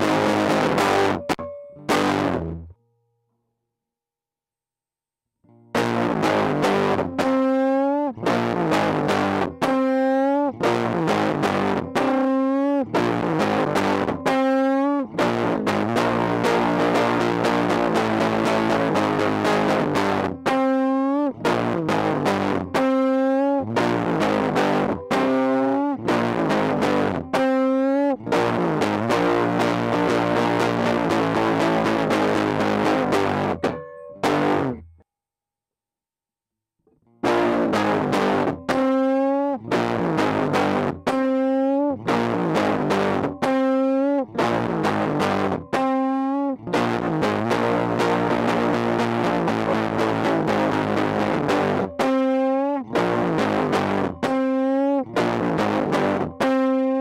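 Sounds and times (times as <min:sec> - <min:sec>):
distorted electric guitar riff: 0:00.0 - 0:02.8, 0:05.5 - 0:35.0, 0:37.1 - 0:57.0.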